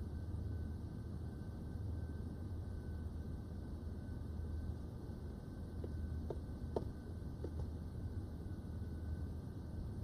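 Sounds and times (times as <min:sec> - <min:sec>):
low steady room hum: 0:00.0 - 0:10.0.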